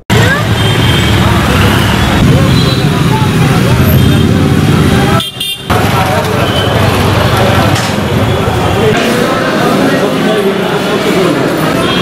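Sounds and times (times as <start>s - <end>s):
road traffic: 0.0s - 12.0s
crowd talking: 0.1s - 12.0s.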